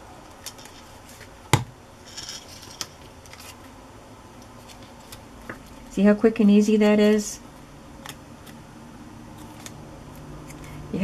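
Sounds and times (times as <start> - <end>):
paper rustle: 2.1 - 3.7, 4.6 - 5.9
paper handling: 2.2 - 3.7, 4.6 - 5.9.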